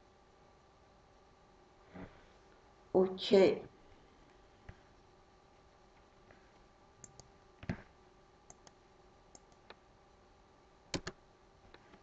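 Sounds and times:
faint steady hum: 0.0s - 12.0s
mouse and keyboard clicks: 7.0s - 7.9s, 8.5s - 9.8s, 10.9s - 12.0s.

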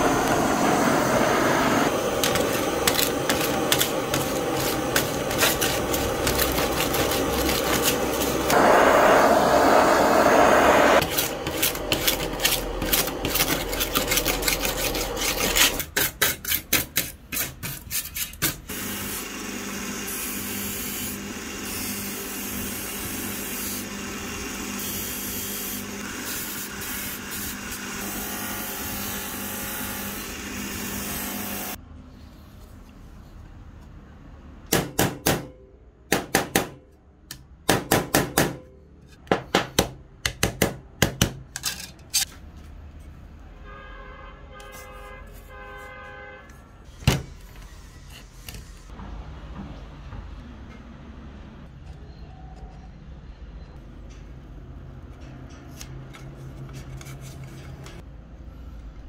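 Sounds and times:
torch hissing: 0.0s - 11.4s
buffing wheel humming: 0.0s - 15.8s
hand tool rubbing metal: 2.2s - 8.6s, 11.0s - 16.7s.

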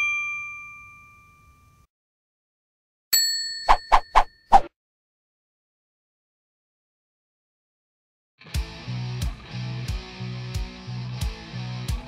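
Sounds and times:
bell-like ding: 0.0s - 1.8s, 3.2s - 4.4s.

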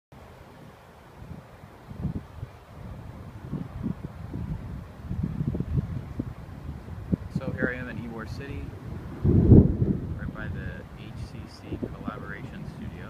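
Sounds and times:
wind buffeting microphone: 0.2s - 13.0s.

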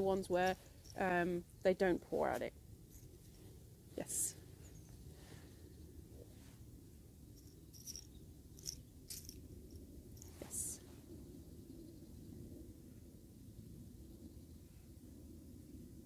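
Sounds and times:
low background rumble: 0.0s - 16.0s.

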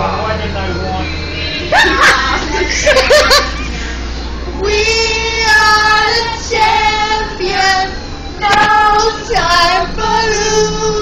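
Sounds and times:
bus engine rumble: 0.0s - 11.0s
women singing long notes: 4.5s - 11.0s.

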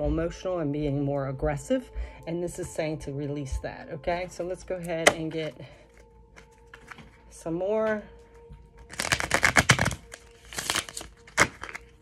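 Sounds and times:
cards shuffling clicks: 8.8s - 12.0s
cards snapping: 8.8s - 12.0s.

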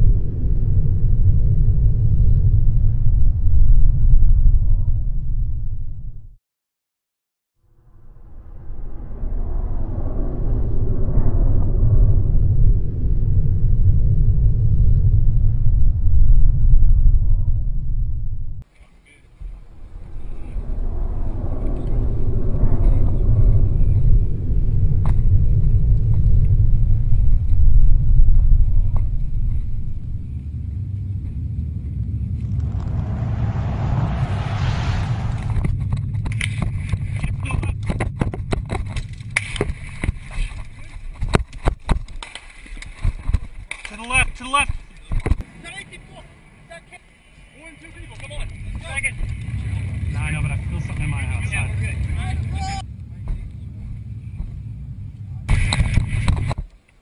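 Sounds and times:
wind buffeting microphone: 0.0s - 6.2s, 19.3s - 56.8s
camera knocking over loose rock: 37.8s - 43.9s.

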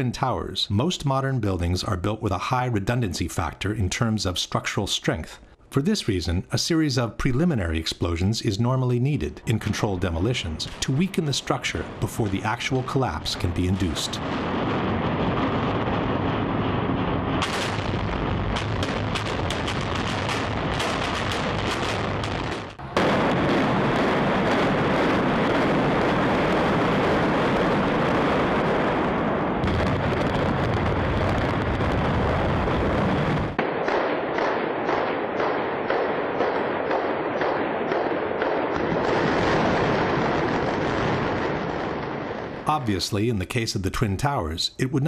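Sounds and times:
explosive charges banging: 9.6s - 28.3s
low rumble with cracks: 10.2s - 42.7s.

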